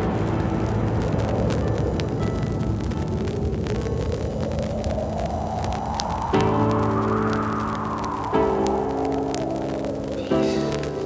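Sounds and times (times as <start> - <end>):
rushing noise-like wash: 0.0 - 11.0
steady low hum: 0.0 - 11.0.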